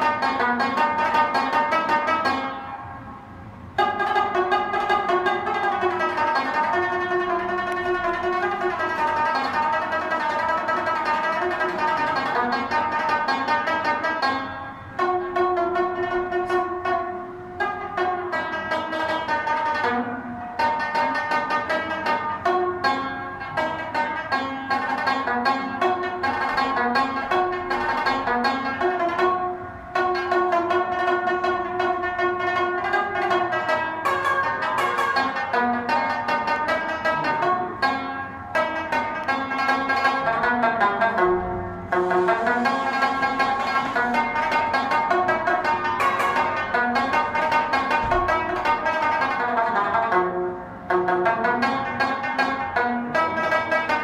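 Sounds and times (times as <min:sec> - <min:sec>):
plucked lute melody: 0:00.0 - 0:03.1, 0:03.8 - 0:54.0.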